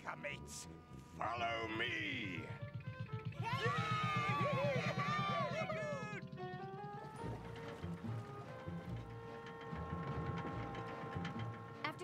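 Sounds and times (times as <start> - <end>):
score music with pulsing beat: 1.2 - 6.5.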